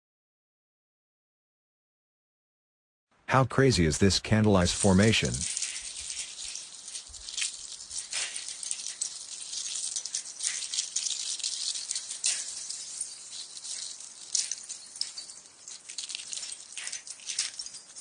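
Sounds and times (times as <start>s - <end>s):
ice crystals clinking: 4.5s - 18.0s.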